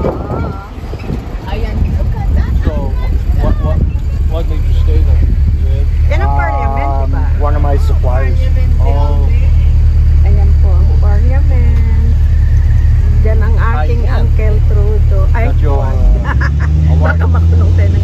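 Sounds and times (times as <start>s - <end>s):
people's voices: 0.0s - 18.0s
tour bus engine rumble: 0.0s - 18.0s.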